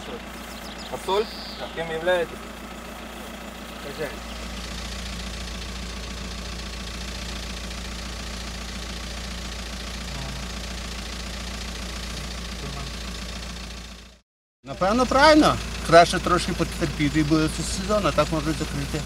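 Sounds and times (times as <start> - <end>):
van engine idling: 0.0 - 19.0.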